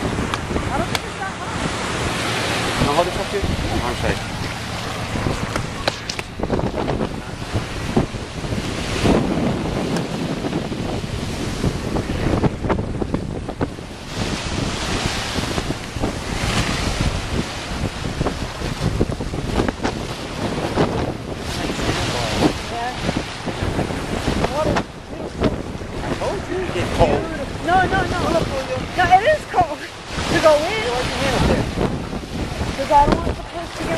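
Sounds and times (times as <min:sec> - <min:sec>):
small waves breaking on beach: 0:00.0 - 0:33.9
wind buffeting microphone: 0:00.0 - 0:33.9.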